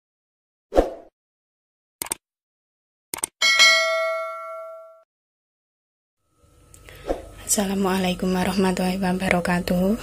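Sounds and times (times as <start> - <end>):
short clicks: 2.0 - 2.2, 3.1 - 3.3
bright bell ding: 3.4 - 5.0.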